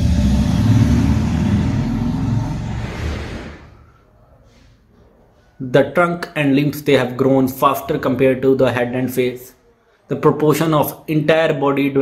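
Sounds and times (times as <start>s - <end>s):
passing vehicle rumble: 0.0s - 4.2s.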